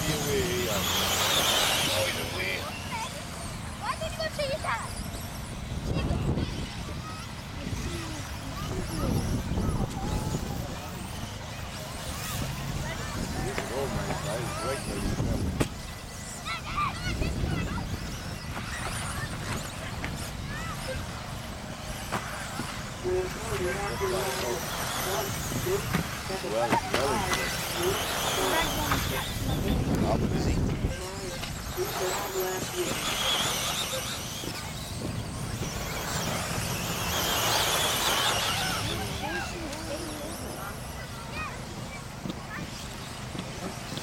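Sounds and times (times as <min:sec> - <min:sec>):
rc car motors whining: 0:00.0 - 0:44.0
voices: 0:00.0 - 0:44.0.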